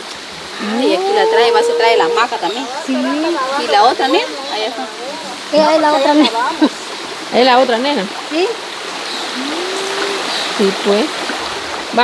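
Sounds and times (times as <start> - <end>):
stream running over rocks: 0.0 - 12.0.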